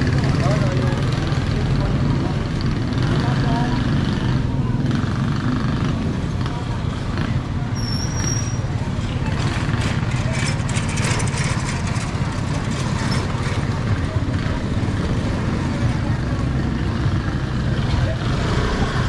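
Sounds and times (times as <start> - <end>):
people talking: 0.0 - 19.0
high-pitched squeak: 7.8 - 8.7
rattling clatter: 9.0 - 14.6
small motorcycle engine running: 9.1 - 19.0.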